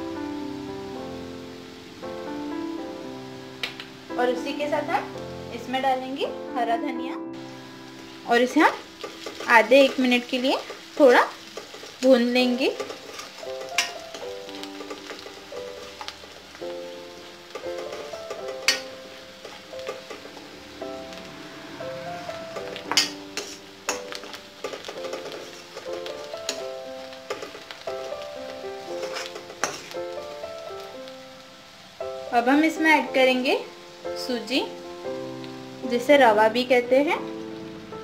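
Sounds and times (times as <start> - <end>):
background music held notes: 0.0 - 38.0
vegetables sizzling in oil: 0.0 - 38.0.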